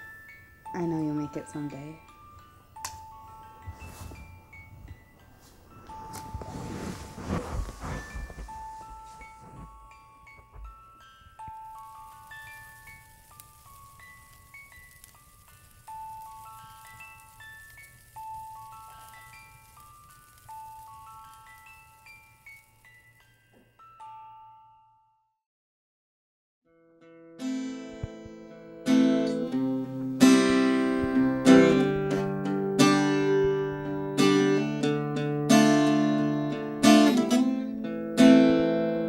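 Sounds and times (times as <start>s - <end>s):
music box melody: 0.0s - 7.0s, 8.0s - 25.3s
rustling handling noise: 3.6s - 23.0s.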